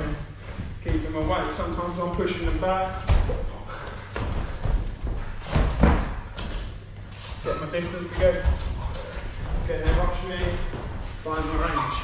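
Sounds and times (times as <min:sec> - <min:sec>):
feet thudding on boxing ring canvas: 0:00.2 - 0:12.0.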